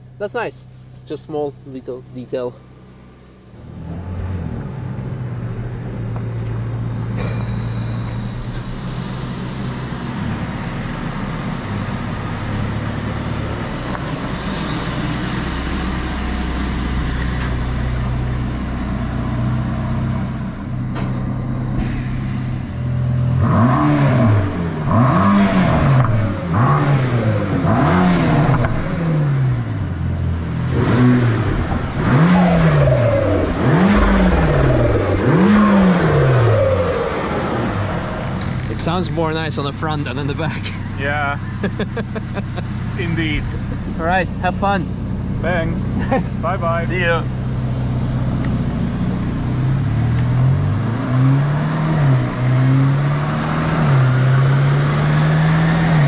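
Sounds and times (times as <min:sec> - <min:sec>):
car engine revving on dyno: 0:23.2 - 0:29.9, 0:30.5 - 0:39.0, 0:49.4 - 0:56.0.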